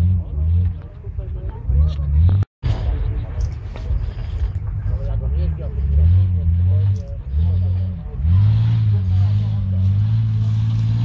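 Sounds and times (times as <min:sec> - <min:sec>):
off-road vehicle engine revving: 0:00.0 - 0:11.0.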